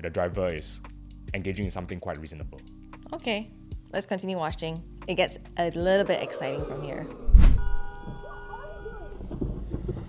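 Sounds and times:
woman shouting: 0:08.3 - 0:09.2.

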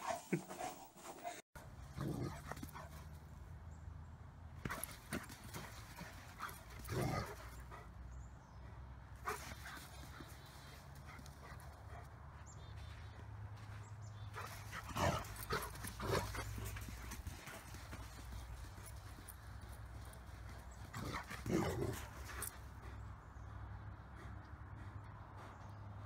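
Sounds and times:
dogs playing: 0:00.0 - 0:03.3, 0:04.6 - 0:08.6, 0:09.2 - 0:25.8.

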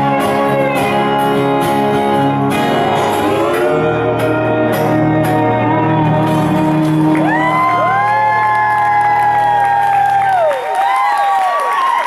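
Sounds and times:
audience whooping and cheering: 0:05.6 - 0:12.0.

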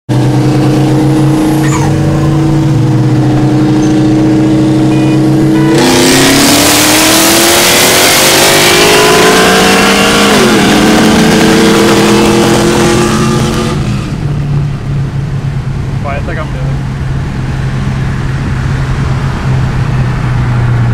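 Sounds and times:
car engine revving: 0:00.1 - 0:20.9.

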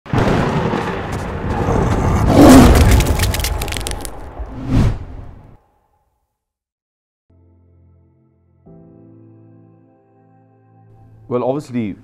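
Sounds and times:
crackles: 0:00.1 - 0:04.6.

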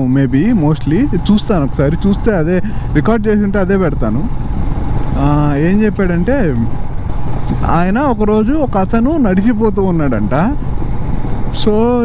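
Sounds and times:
motorcycle engine running: 0:00.0 - 0:12.0
person speaking: 0:05.1 - 0:06.8.

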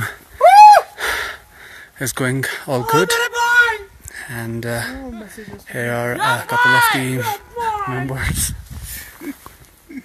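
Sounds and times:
person's high-pitched call: 0:02.8 - 0:03.8
breath puffs on microphone: 0:08.4 - 0:09.3.

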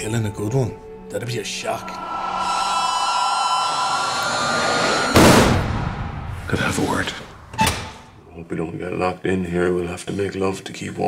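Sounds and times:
whooshing hiss drone: 0:01.5 - 0:07.4
held high tones: 0:01.7 - 0:05.3.

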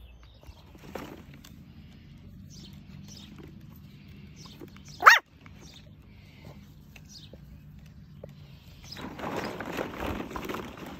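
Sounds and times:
puppy barking: 0:05.0 - 0:05.3.

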